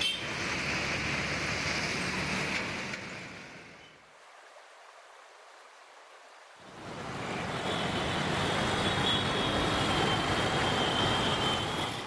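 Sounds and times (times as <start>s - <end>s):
city road traffic: 0.0s - 4.1s, 6.6s - 12.0s.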